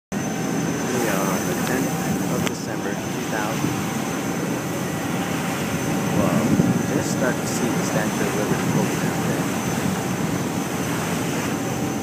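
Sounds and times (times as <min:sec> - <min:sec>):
ferry engine rumble: 0:00.2 - 0:12.0
passengers talking: 0:00.8 - 0:05.0, 0:05.8 - 0:10.7.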